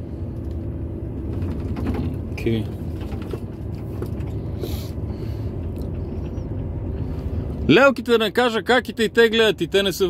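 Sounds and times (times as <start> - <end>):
lorry engine and road rumble: 0.0 - 10.0.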